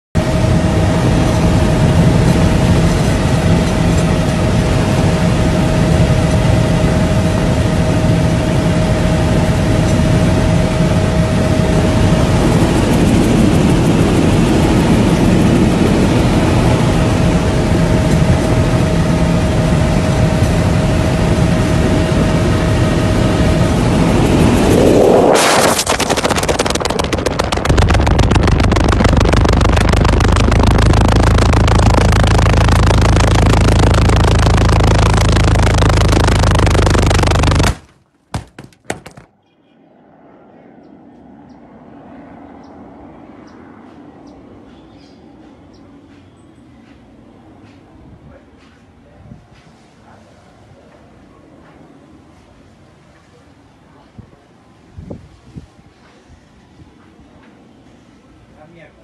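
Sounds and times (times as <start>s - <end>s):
buffeting wind rush: 0.2s - 37.8s, 54.9s - 55.9s
helicopter engine and rotor: 0.2s - 37.8s, 39.6s - 48.3s.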